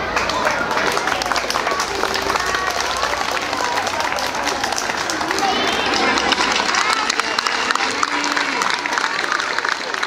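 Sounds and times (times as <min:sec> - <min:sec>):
crowd applauding: 0:00.0 - 0:10.0
voices: 0:00.0 - 0:10.0.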